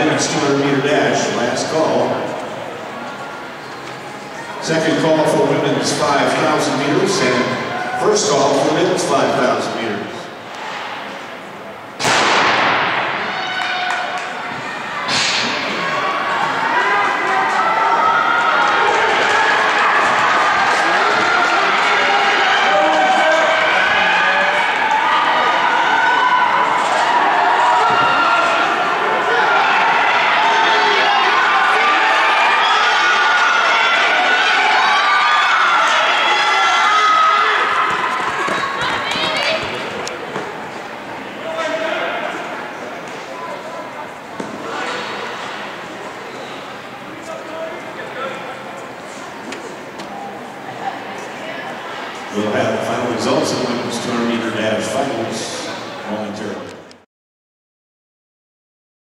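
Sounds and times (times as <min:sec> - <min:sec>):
spectators cheering and shouting: 0:00.0 - 0:10.1, 0:12.2 - 0:56.1.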